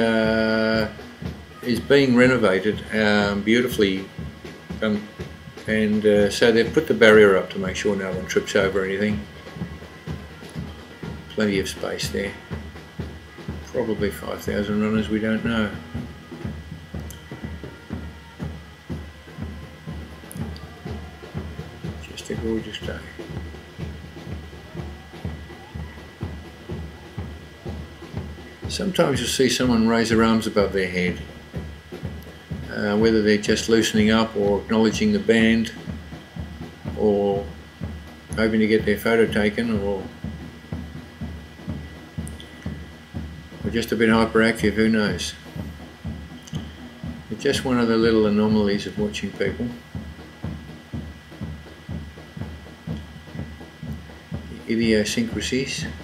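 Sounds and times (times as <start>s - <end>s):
hum of moving crowd: 0.0s - 56.0s
steady drum beat: 0.0s - 56.0s.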